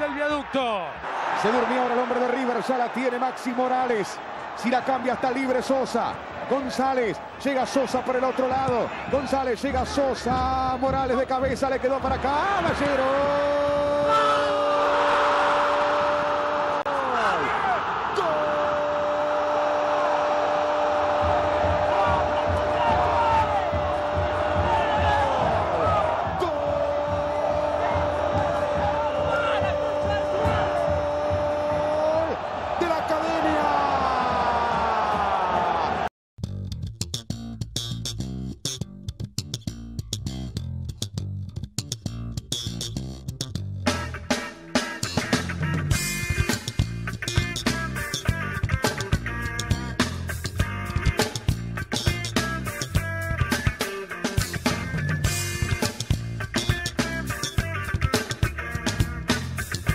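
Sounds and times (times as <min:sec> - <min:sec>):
roaring stadium crowd: 0:00.0 - 0:36.1
music with bass and guitar: 0:36.4 - 0:59.9.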